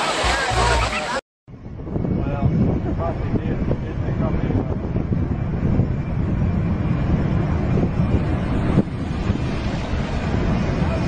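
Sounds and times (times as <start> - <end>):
distant jet engines: 1.5 - 11.0
wind buffeting microphone: 1.5 - 11.0.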